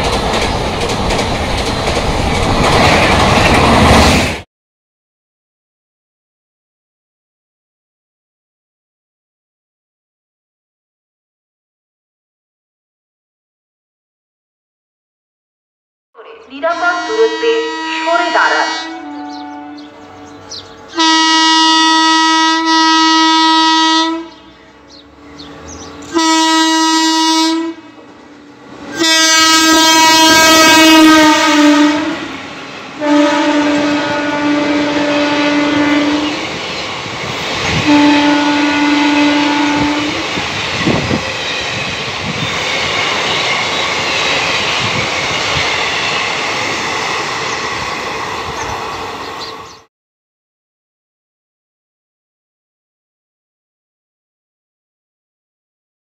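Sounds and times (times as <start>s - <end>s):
wheels clickety-clack: 0.0s - 4.2s
train rumble: 0.0s - 4.4s, 24.3s - 49.9s
train horn blasts: 16.6s - 24.6s, 26.0s - 28.0s, 28.9s - 32.4s, 33.0s - 36.5s, 37.7s - 40.3s.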